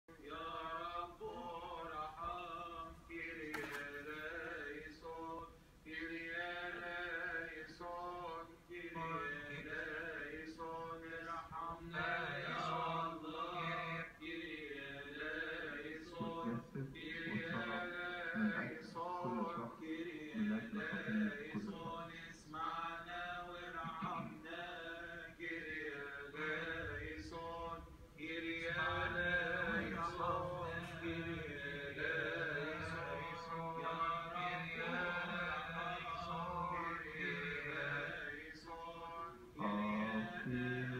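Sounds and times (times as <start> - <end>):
men chanting liturgy through speaker: 0.1 - 40.9
steady low hum: 15.0 - 38.5.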